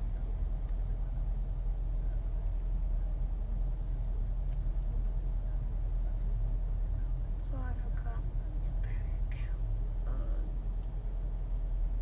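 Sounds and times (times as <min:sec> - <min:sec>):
car idling inside cabin: 0:00.0 - 0:12.0.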